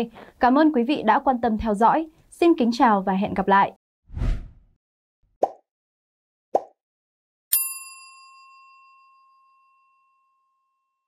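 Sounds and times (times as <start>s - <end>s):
bell ding: 7.5s - 10.9s.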